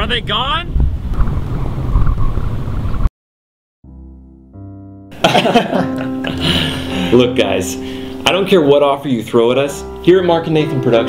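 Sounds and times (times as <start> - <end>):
wind buffeting microphone: 0.0 - 3.1.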